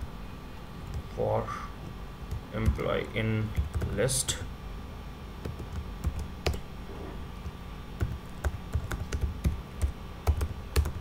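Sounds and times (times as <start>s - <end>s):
typing on computer keyboard: 3.6s - 4.0s, 8.0s - 11.0s.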